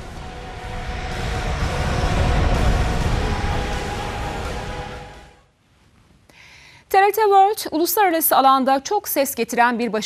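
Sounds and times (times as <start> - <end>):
aircraft engine rumble and drone: 0.0 - 5.4.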